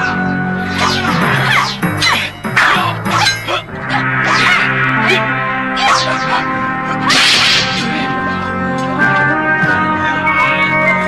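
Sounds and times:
background music: 0:00.0 - 0:11.0
sword swing whoosh: 0:07.1 - 0:08.0.

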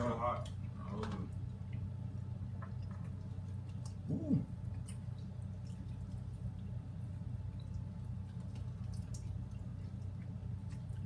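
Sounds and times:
people chewing wet clicks: 0:00.0 - 0:11.0
steady low hum: 0:00.0 - 0:11.0.

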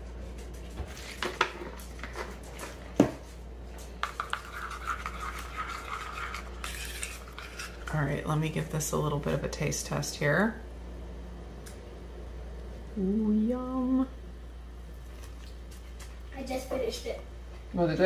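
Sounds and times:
spoon stirring in ceramic bowl: 0:03.8 - 0:08.4.

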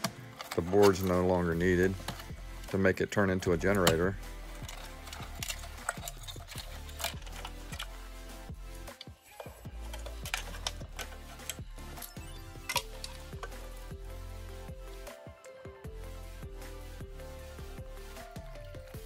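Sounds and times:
hands handling plastic shell: 0:00.0 - 0:02.7, 0:03.4 - 0:08.0, 0:08.9 - 0:11.7
electronic music with bass: 0:01.4 - 0:02.8, 0:03.5 - 0:09.0, 0:09.6 - 0:15.1, 0:15.8 - 0:19.0.

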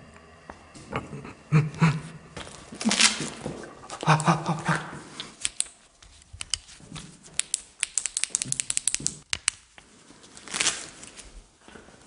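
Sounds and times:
sharp clicks and taps: 0:05.4 - 0:09.6.

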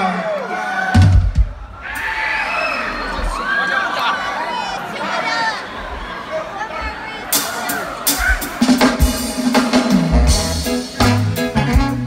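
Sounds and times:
crowd cheering and shouting: 0:00.0 - 0:11.1.

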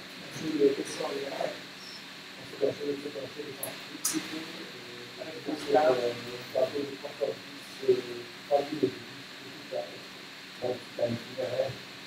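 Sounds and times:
steady room hiss: 0:00.0 - 0:12.0
faint person speaking: 0:00.2 - 0:10.0, 0:10.6 - 0:11.8.

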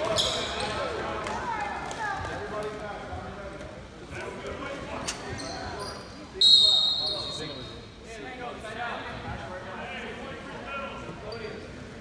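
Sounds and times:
referee's whistle blast: 0:06.4 - 0:07.4.

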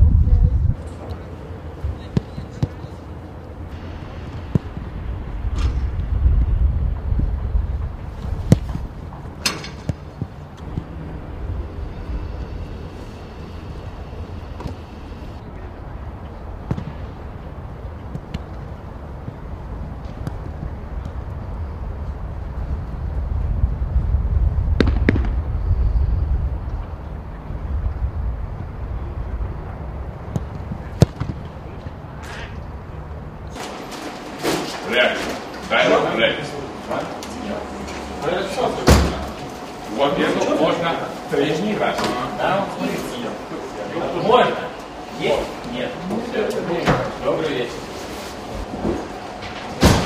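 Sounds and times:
low rumble: 0:00.0 - 0:01.0, 0:03.5 - 0:09.4, 0:10.0 - 0:33.6
wind buffeting microphone: 0:00.0 - 0:02.6, 0:03.3 - 0:33.5.

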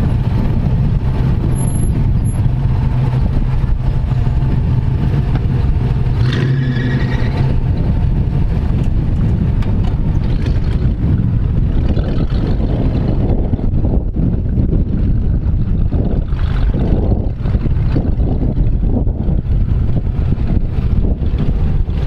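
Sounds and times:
engine running at low revs: 0:00.0 - 0:22.0
high-pitched squeal: 0:06.3 - 0:07.6.

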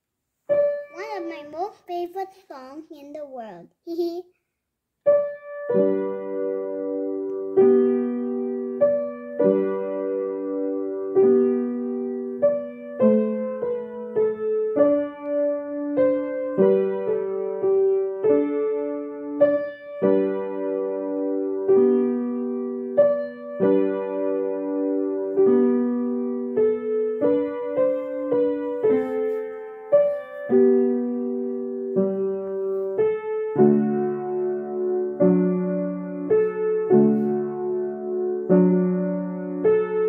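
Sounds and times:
piano melody: 0:00.5 - 0:02.2, 0:05.0 - 0:40.0.

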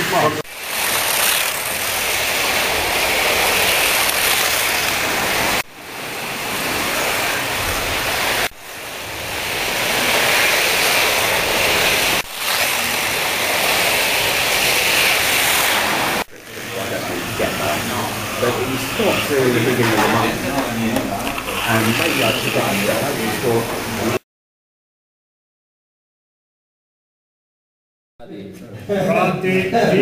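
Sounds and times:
slot cars whirring on track: 0:00.0 - 0:24.2.

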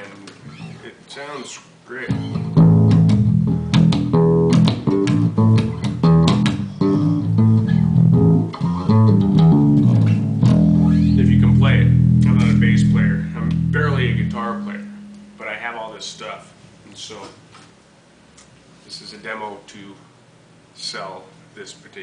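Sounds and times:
electric bass notes: 0:02.0 - 0:16.4.

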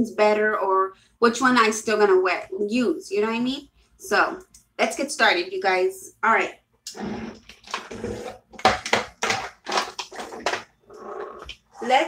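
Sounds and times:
plastic tubes clattering: 0:07.4 - 0:11.6.

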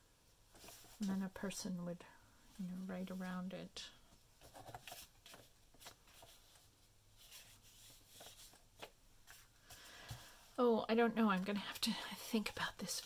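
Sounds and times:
paper rustling on tabletop: 0:00.5 - 0:01.2, 0:04.4 - 0:10.4.

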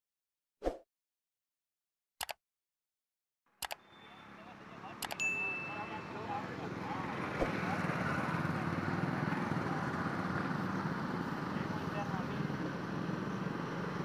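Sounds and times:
faint indistinct voices: 0:04.1 - 0:12.6
sharp click: 0:05.0 - 0:05.2.

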